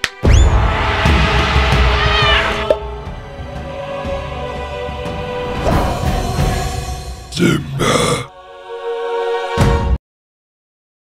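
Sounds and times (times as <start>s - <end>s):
background music: 0.0s - 10.0s
cartoon lion roar: 7.4s - 8.3s.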